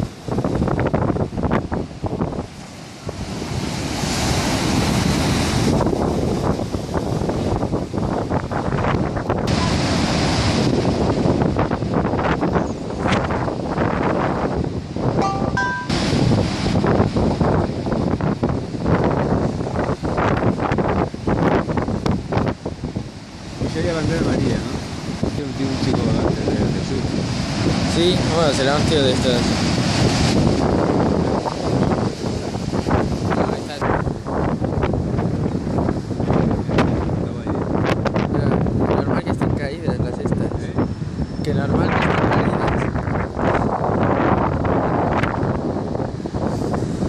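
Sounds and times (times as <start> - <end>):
storm surf breaking against wall: 0.0 - 47.0.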